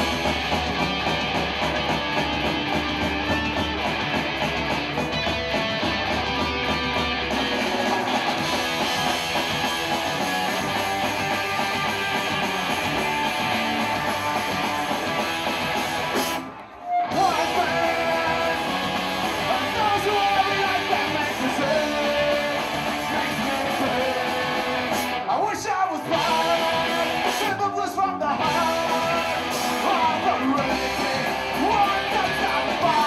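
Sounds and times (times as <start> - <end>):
punk rock band playing: 0.0 - 33.0.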